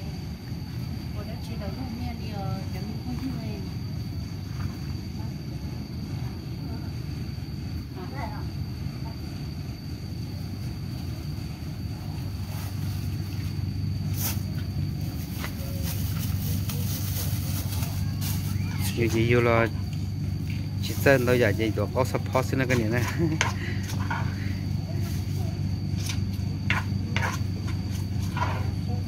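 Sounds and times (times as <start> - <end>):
plastic bag crackling: 15.0 - 19.3
spoon in clay mortar: 26.0 - 28.9.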